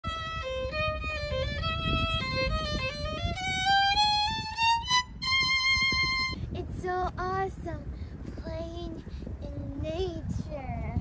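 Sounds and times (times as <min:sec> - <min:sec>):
solo violin playing: 0:00.0 - 0:06.4.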